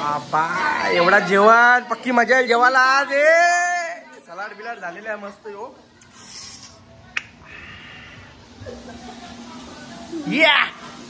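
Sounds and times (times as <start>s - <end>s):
faint background voices: 3.7s - 11.0s.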